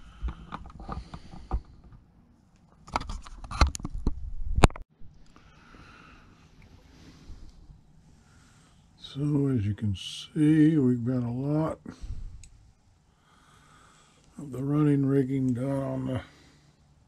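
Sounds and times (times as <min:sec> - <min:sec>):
faint steady hiss: 0:05.0 - 0:17.0.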